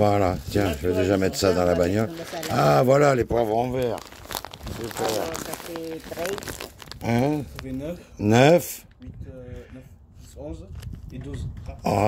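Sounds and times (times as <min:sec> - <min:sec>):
plastic bags crinkling: 0:00.0 - 0:08.0.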